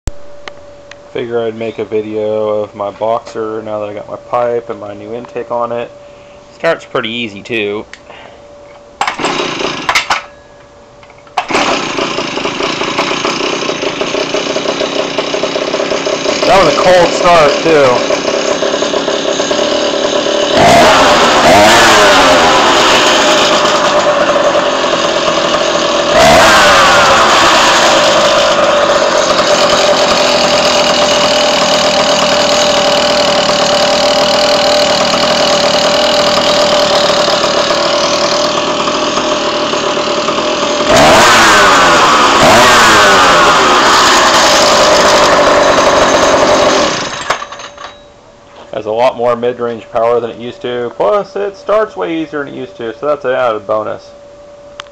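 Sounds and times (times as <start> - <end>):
two-stroke engine idling and revving: 9.0 - 10.2, 11.4 - 47.9.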